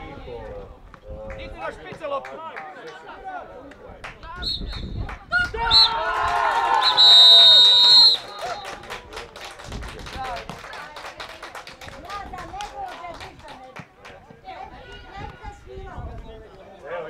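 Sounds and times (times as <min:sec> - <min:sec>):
referee's whistle blasts: 0:04.4 - 0:05.0, 0:06.8 - 0:08.7.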